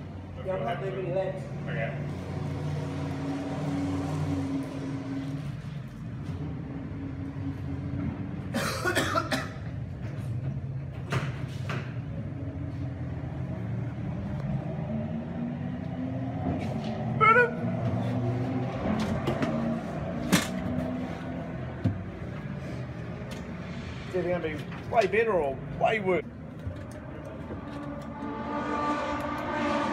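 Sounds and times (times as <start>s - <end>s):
racing car engines droning: 0.0s - 29.9s.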